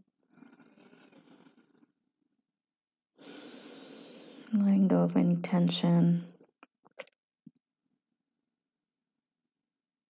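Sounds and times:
woman breathing deeply: 3.2 - 4.5.

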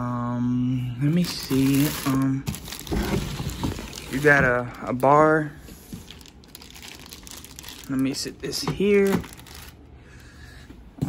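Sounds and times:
plastic wrapping crinkling: 1.2 - 9.9.

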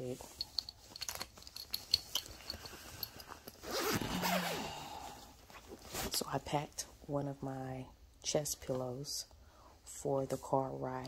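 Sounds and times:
zipper on fabric bag: 3.5 - 6.2.

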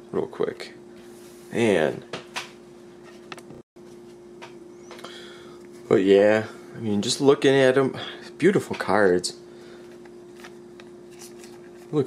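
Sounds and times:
steady low hum: 0.0 - 12.0
trading cards sliding and clicking: 9.9 - 12.0.

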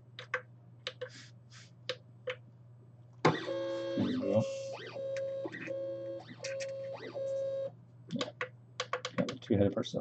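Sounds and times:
printer stepper motors whining: 3.3 - 7.7
sharp clicks: 8.1 - 9.4.

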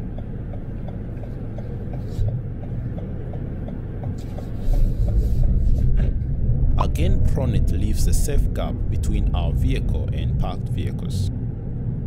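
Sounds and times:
turn indicator ticking: 0.0 - 5.6
car engine and road rumble: 0.0 - 12.0.

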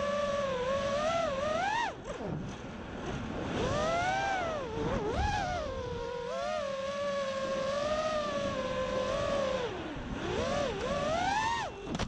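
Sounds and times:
quadcopter motors whining: 0.0 - 2.4, 3.5 - 12.0.

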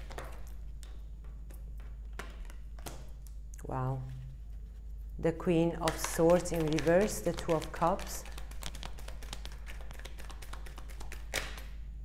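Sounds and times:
cards shuffling and clicking: 0.0 - 3.3, 5.8 - 11.7.

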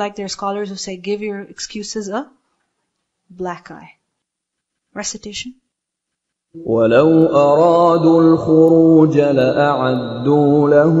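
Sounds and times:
person chanting recitation: 6.6 - 11.0.

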